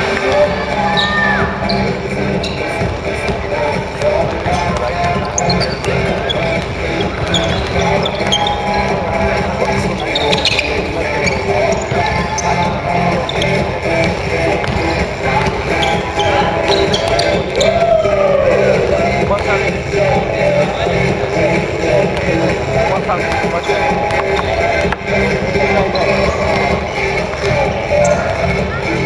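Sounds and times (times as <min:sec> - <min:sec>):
music playing: 0:00.0 - 0:29.0
players' voices: 0:00.0 - 0:29.0
sneakers squeaking: 0:00.0 - 0:29.0
ball bouncing on wooden court: 0:04.0 - 0:08.8, 0:13.3 - 0:17.8.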